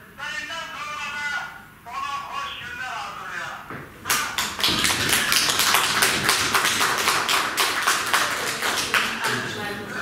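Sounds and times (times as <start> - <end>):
group of people clapping: 4.0 - 9.6.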